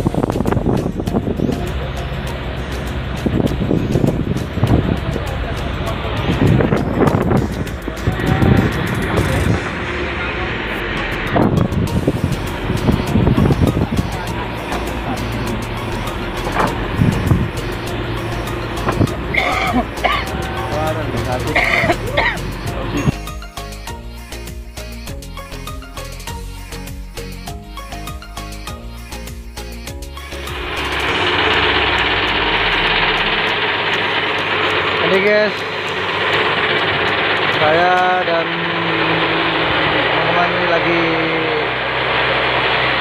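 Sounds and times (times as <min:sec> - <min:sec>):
boat engine running: 0:00.0 - 0:43.0
wind: 0:00.0 - 0:43.0
water noise: 0:30.3 - 0:37.8.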